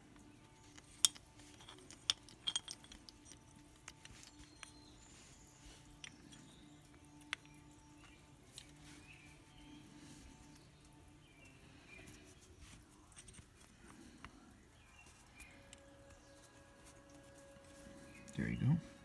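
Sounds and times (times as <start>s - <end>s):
faint steady hum: 0.0s - 19.0s
small metal clicks and clinks: 0.7s - 4.9s.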